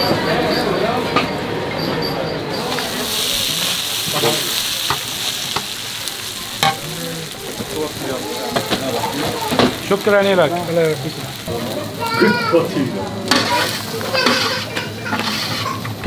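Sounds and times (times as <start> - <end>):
food sizzling: 2.5 - 16.0
metal utensil scraping a tray: 13.3 - 15.9.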